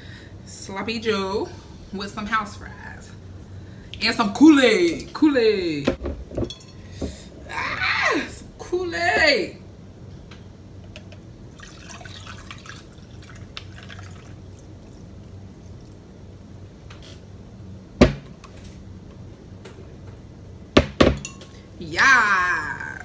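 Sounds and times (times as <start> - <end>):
liquid pouring into glass: 11.5 - 16.0
sharp knock: 18.0 - 18.3.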